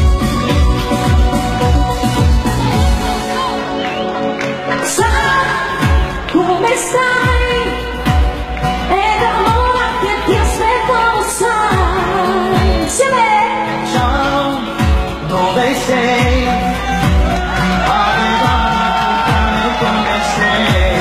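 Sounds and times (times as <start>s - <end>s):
bass drum beat: 0.0s - 3.2s, 14.0s - 21.0s
band accompaniment: 0.0s - 10.8s
woman singing into microphone: 4.6s - 16.8s.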